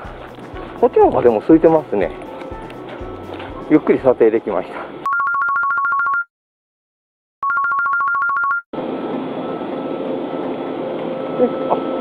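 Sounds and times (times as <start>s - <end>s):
electronic telephone ringing: 5.0s - 6.3s, 7.4s - 8.6s.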